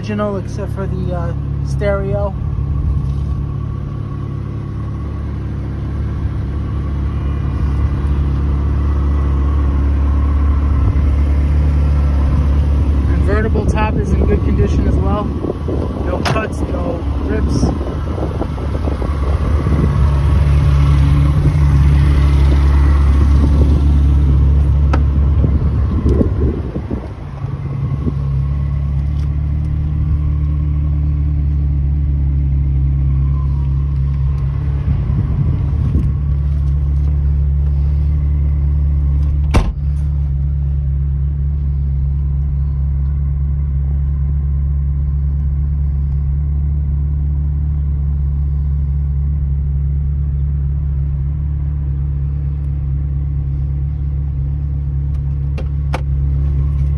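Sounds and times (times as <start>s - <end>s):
car engine idling: 0.0s - 56.9s.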